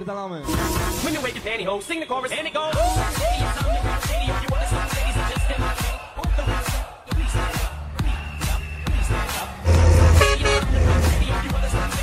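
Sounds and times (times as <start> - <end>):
dance music with heavy beat: 0.5 - 12.0
horn toots: 9.1 - 11.9.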